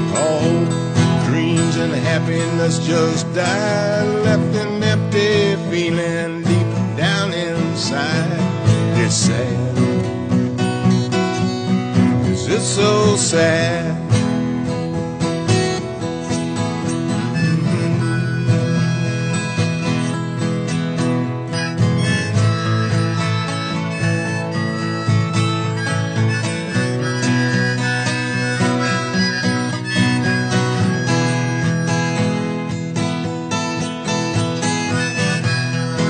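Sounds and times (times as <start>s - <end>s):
harmonica lead: 0.0s - 36.0s
strummed acoustic guitar: 0.0s - 36.0s.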